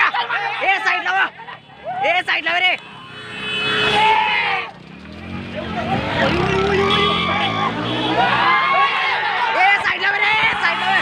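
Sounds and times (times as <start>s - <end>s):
men shouting: 5.9s - 11.0s.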